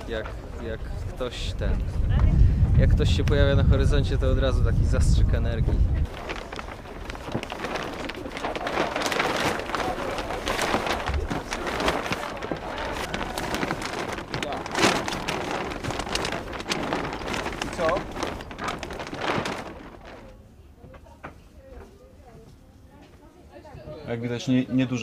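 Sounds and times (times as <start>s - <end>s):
sailcloth crackling and rustling: 0.0s - 22.7s.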